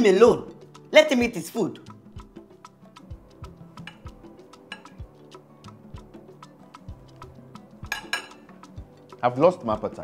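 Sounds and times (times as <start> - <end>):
quiet background music: 0.0 - 10.0
cutlery clinking on a plate: 3.8 - 4.1, 4.7 - 5.0, 7.9 - 8.5.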